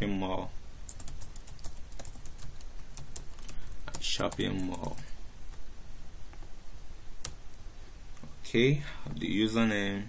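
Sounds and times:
computer keyboard typing: 0:00.9 - 0:05.1.

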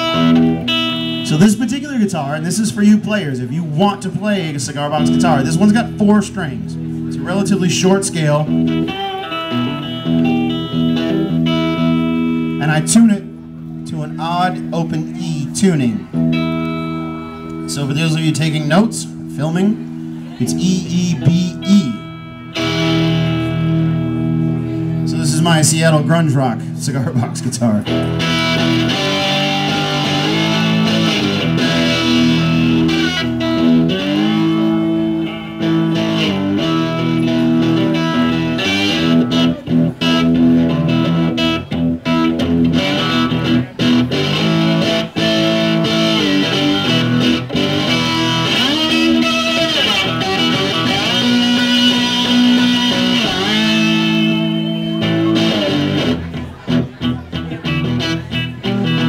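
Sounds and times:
slide guitar chords: 0:00.0 - 0:59.0.

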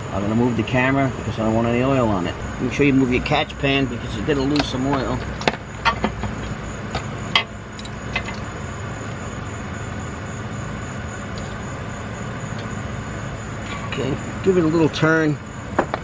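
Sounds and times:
steady background hum: 0:00.0 - 0:16.0
metal clicks and knocks: 0:04.5 - 0:08.5.

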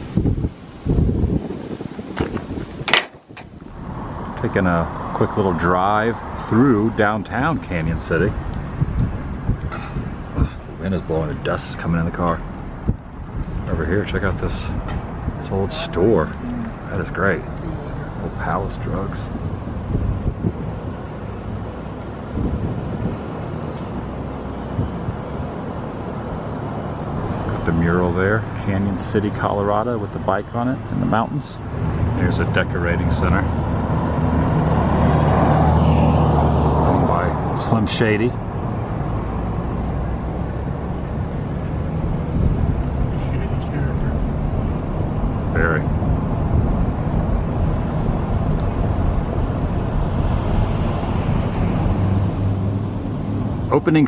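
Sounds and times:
wind buffeting microphone: 0:00.0 - 0:53.7
low rumble of car driving: 0:00.0 - 0:54.0.

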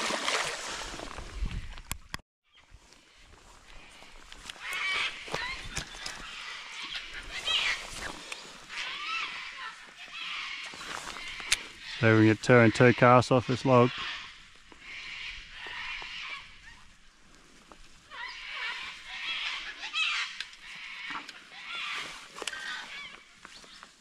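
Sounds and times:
fish splashing in river: 0:00.0 - 0:01.2
high bird calls: 0:02.5 - 0:17.0, 0:18.0 - 0:24.0.

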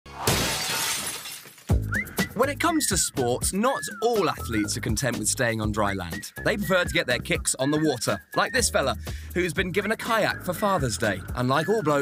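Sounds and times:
glass breaking crash: 0:00.1 - 0:01.8.

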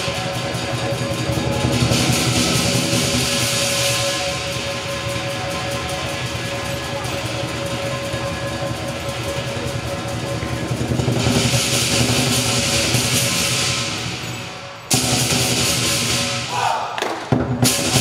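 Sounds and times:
big drum beating: 0:00.0 - 0:14.3
clashing cymbals: 0:00.0 - 0:18.0.

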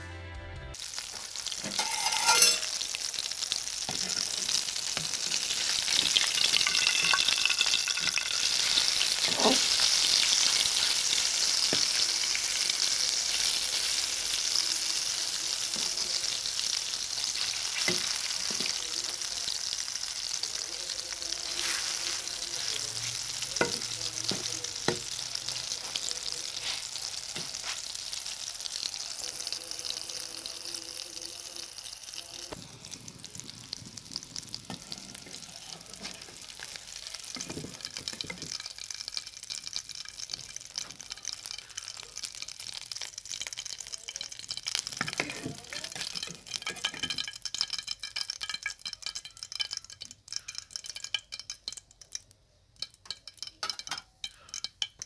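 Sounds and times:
fritters sizzling in oil: 0:00.8 - 0:55.0
metal spatula scraping pan: 0:01.6 - 0:02.9.

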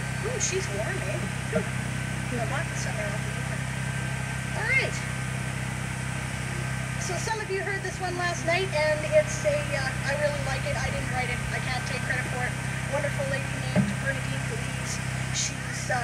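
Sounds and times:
indistinct talking: 0:00.0 - 0:16.0
steady low hum: 0:00.0 - 0:16.0.

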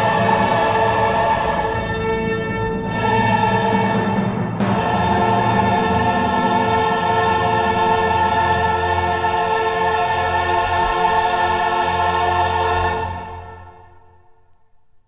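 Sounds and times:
choir and orchestra chord: 0:00.0 - 0:14.2.

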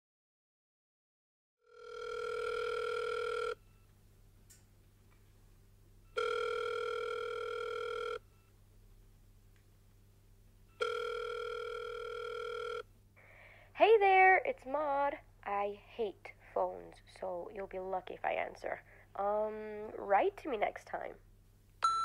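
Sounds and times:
telephone ringback tone: 0:01.6 - 0:03.8, 0:06.0 - 0:08.5, 0:10.7 - 0:12.9.

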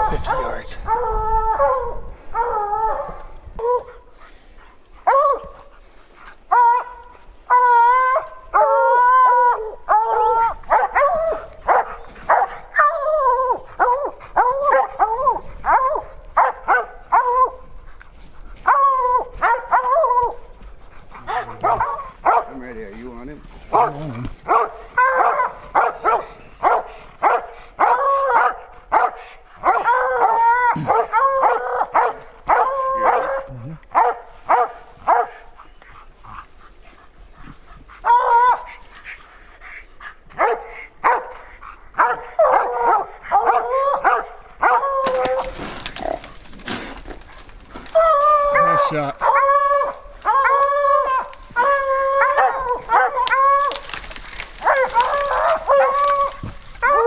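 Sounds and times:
hounds baying and barking: 0:00.0 - 0:57.0.

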